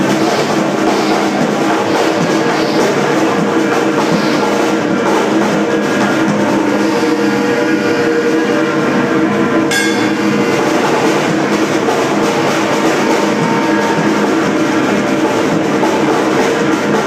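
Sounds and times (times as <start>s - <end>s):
rock band droning: 0.0s - 17.0s
electric guitar ringing: 9.7s - 10.9s
sharp drum hit: 9.7s - 14.2s.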